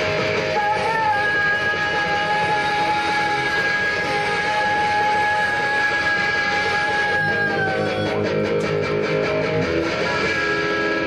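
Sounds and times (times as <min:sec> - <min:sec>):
electric guitar feedback note: 0:00.0 - 0:11.0.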